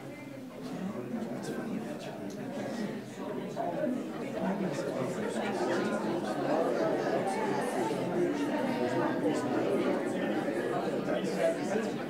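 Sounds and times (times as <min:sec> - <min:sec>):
overlapping conversations: 0:00.6 - 0:12.0.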